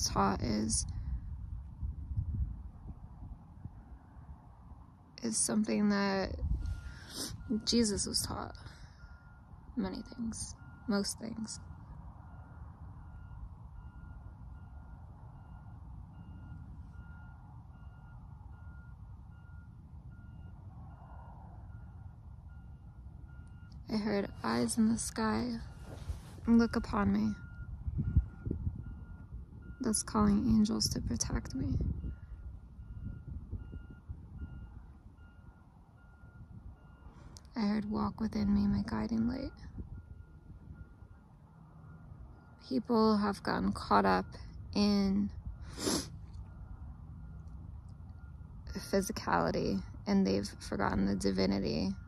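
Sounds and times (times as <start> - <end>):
low rumble: 0.0 - 52.0
reversing alarm beeping: 5.4 - 52.0.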